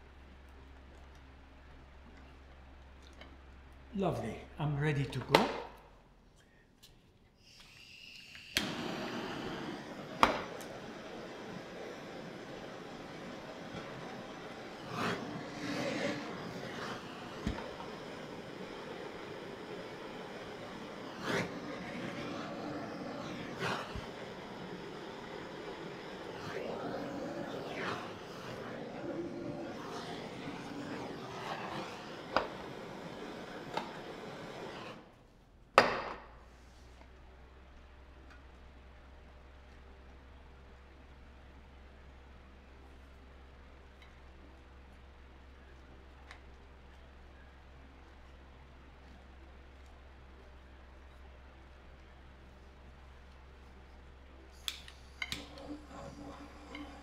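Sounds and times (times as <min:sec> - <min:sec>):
blowtorch flame hissing: 0:07.4 - 0:35.2, 0:54.5 - 0:57.0
blowtorch click: 0:07.5 - 0:35.1, 0:54.6 - 0:57.0.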